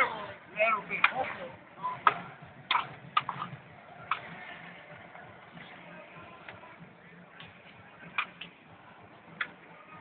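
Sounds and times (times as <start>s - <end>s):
hockey stick clicking against puck: 8.2s - 8.5s.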